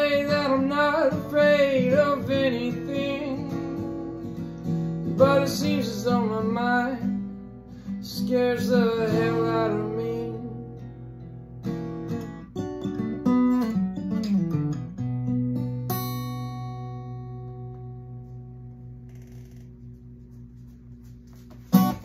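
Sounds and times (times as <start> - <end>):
acoustic guitar playing: 0.0 - 22.0.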